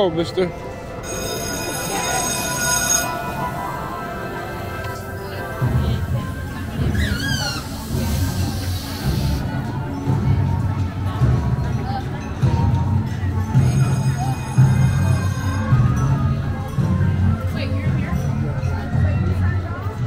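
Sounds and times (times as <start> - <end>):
music playing: 0.0 - 20.0
high wavering squeal: 1.0 - 5.6
low pulsing beat: 3.2 - 19.7.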